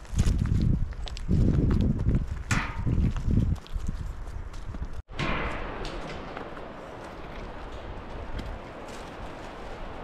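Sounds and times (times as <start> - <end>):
footsteps on stones: 0.0 - 10.0.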